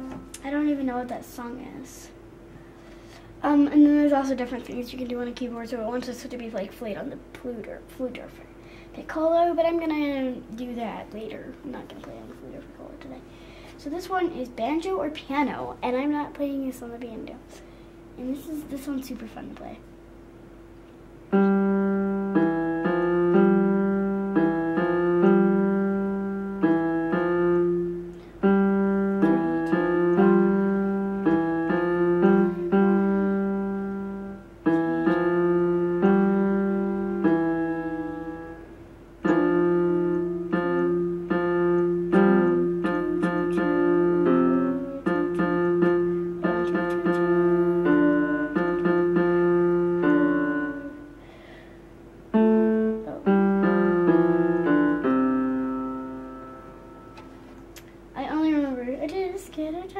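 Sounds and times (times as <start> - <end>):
electronic keyboard piano tune: 21.3 - 51.2, 52.3 - 57.4.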